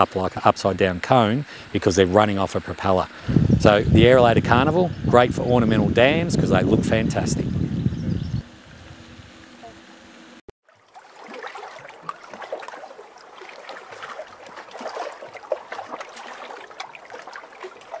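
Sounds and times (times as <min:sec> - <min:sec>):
water splashing and trickling: 0:10.6 - 0:18.0.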